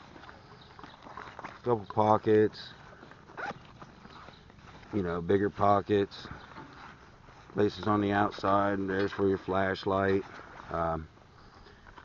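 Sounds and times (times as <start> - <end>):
nylon bag rustling: 2.7 - 5.2.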